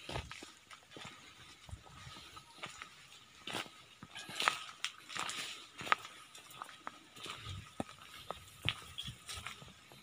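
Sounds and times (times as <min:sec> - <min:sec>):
footsteps crunching on dry leaves: 0:00.0 - 0:10.0.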